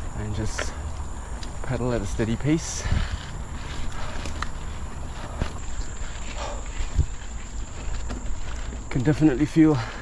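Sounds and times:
bike tyres rolling on dirt: 0.0 - 10.0
rider breathing hard: 2.6 - 8.9, 9.6 - 10.0.

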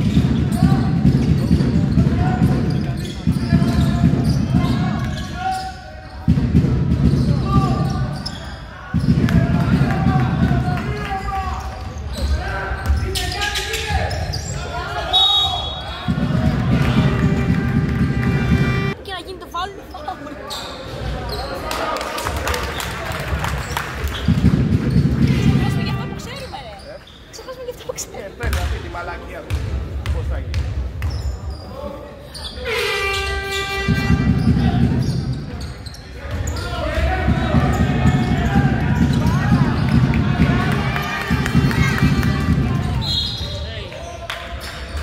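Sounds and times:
basketball bouncing on wooden floor: 0.0 - 5.0, 24.2 - 25.8.

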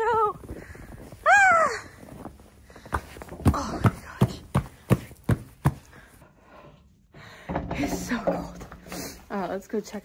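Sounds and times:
boot footsteps: 2.0 - 6.1.

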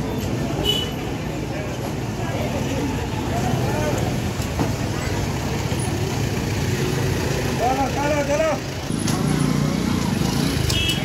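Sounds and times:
people's voices: 0.0 - 10.8.

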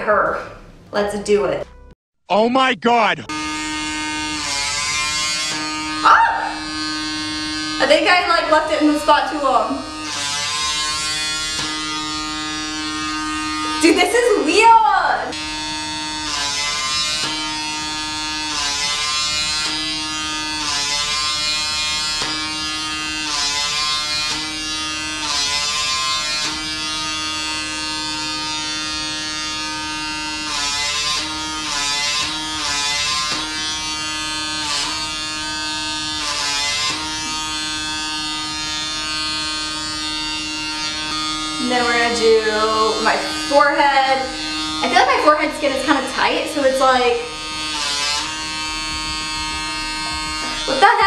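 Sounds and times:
small vacuum motor whining: 3.4 - 51.0.

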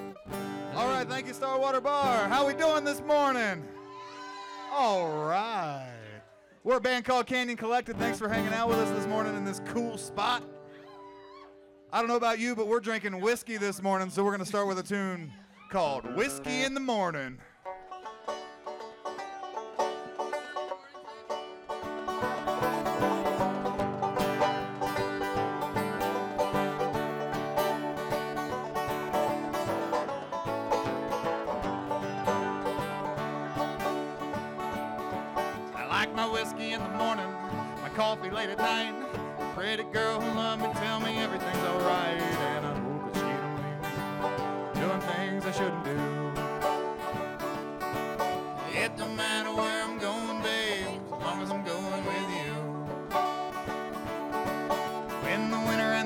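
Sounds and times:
bluegrass trio playing: 0.0 - 5.8, 6.7 - 10.9, 15.8 - 56.0.

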